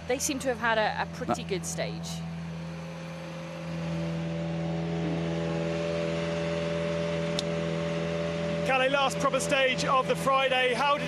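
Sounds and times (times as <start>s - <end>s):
rally car engine running: 0.0s - 11.0s.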